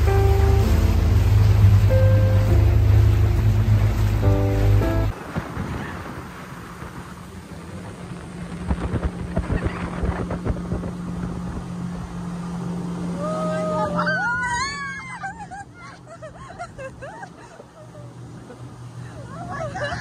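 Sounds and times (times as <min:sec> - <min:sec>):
motorboat engine running: 0:00.0 - 0:20.0
wind and water rushing: 0:00.0 - 0:20.0.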